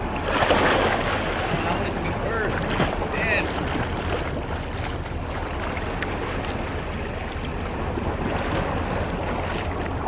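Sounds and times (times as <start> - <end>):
swimmer splashing water: 0.0 - 10.0.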